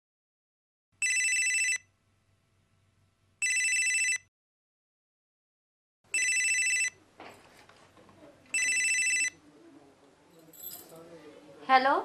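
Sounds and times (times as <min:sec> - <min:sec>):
cordless telephone warbling ring: 0:06.2 - 0:07.0, 0:08.5 - 0:09.4.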